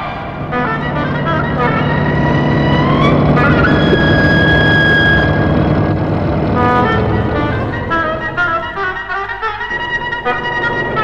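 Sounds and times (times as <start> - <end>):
car engine rumbling: 0.0 - 11.0
film music: 0.0 - 11.0.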